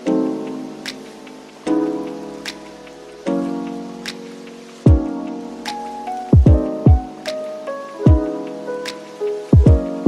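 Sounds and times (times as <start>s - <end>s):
faint steady hiss: 0.0s - 10.0s
lo-fi hip hop beat: 0.0s - 10.0s.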